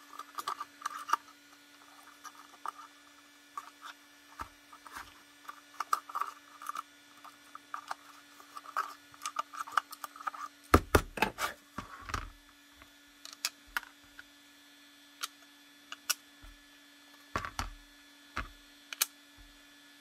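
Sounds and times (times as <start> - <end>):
hand tool scraping plastic: 0.0 - 12.3.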